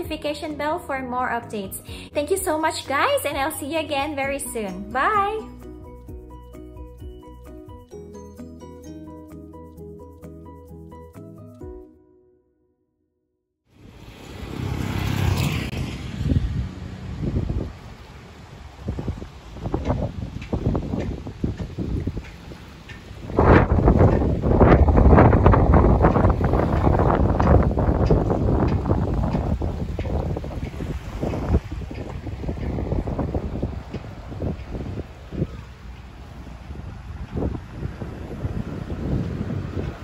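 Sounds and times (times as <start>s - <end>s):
vehicle passing on bridge: 13.8s - 40.0s
wind buffeting microphone: 13.8s - 40.0s.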